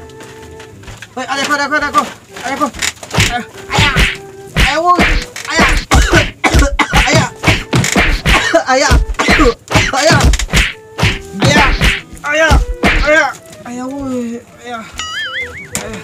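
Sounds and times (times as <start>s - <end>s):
brooms and stick whacking: 0.9s - 13.6s.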